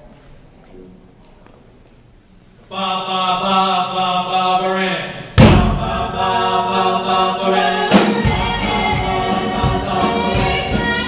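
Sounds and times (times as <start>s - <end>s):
voices singing close harmony: 2.7s - 11.0s
loud drum hit: 5.4s - 6.3s, 7.9s - 11.0s.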